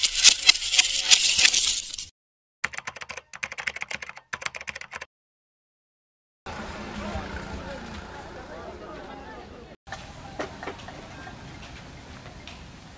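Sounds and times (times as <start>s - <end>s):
keyboard typing clicks: 2.7s - 5.1s.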